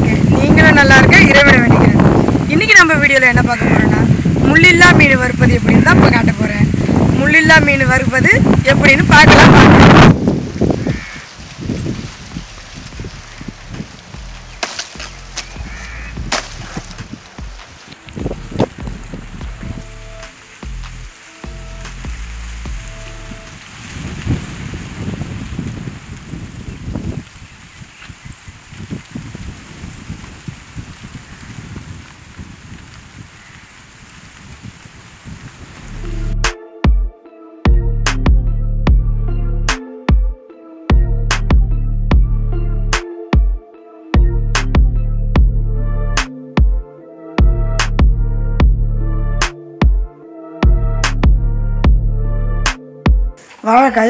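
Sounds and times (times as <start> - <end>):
wind on microphone: 0.0 - 36.5
sharp snaps and rustles: 10.8 - 29.2
background music: 13.7 - 23.6, 35.9 - 54.0.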